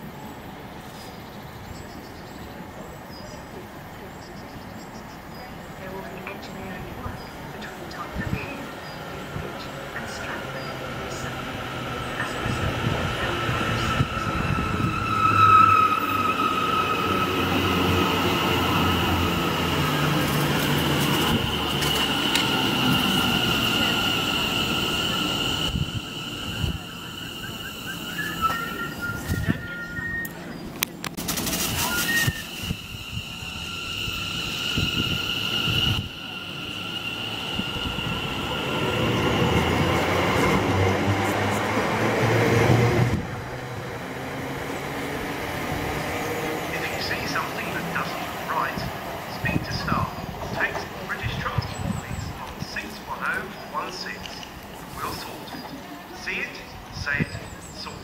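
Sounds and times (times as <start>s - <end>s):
electric train whine: 5.1s - 58.0s.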